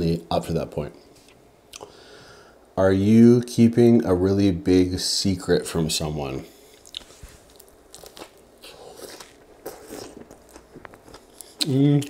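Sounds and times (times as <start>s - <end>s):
person chewing sandwich: 6.6s - 12.0s.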